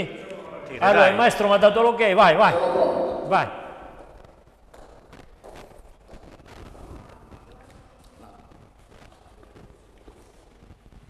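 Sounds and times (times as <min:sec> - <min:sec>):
heeled boots on hard floor: 0:03.9 - 0:07.4.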